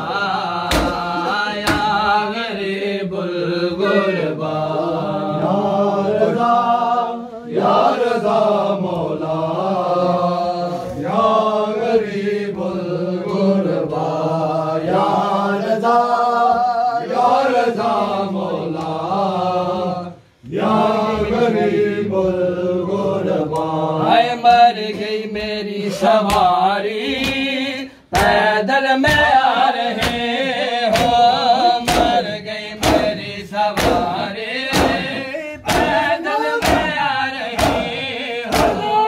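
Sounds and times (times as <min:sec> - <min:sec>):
men chanting a lament: 0:00.0 - 0:39.0.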